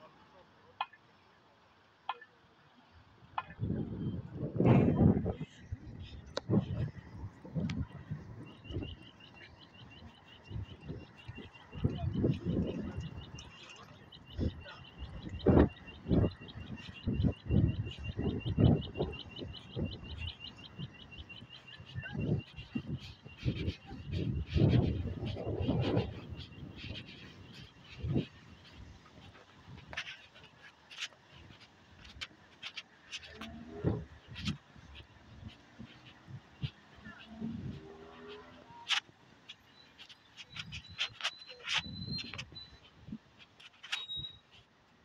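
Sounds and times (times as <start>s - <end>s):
wind buffeting microphone: 3.5s - 43.3s
crossing signal ticking: 6.1s - 43.0s.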